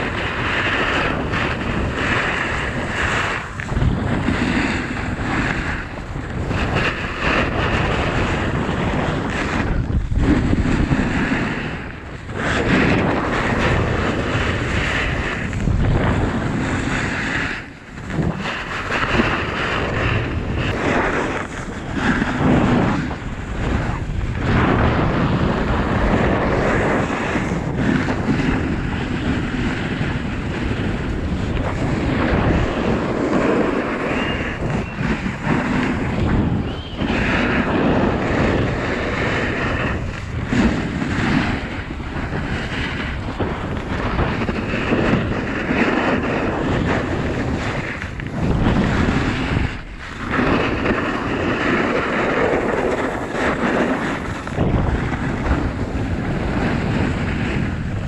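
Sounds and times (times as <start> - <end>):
skis scraping over snow: 0.0 - 58.0
wind rushing over microphone: 0.0 - 58.0.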